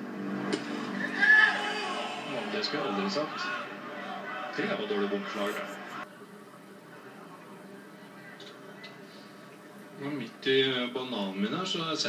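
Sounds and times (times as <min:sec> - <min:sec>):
television broadcast ambience: 0:00.0 - 0:12.0.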